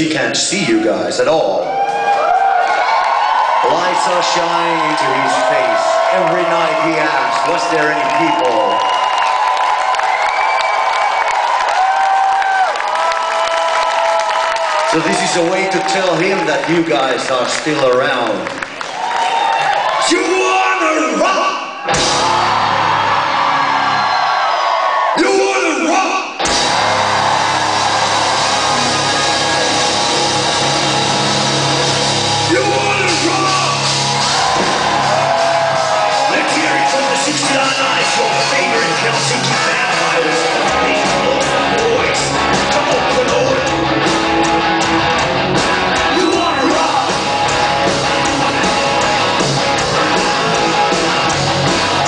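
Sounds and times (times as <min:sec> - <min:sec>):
crowd cheering and screaming: 0:00.7 - 0:52.0
live gothic rock band: 0:21.8 - 0:24.4, 0:26.4 - 0:52.0
long high screams: 0:26.7 - 0:37.1.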